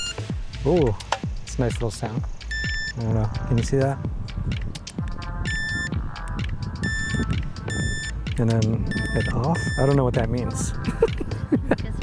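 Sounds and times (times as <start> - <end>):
short high electronic beeps: 0.0 - 0.2, 2.5 - 3.0, 5.5 - 5.9, 6.8 - 8.2, 8.9 - 10.0
background music with beat: 0.0 - 12.0.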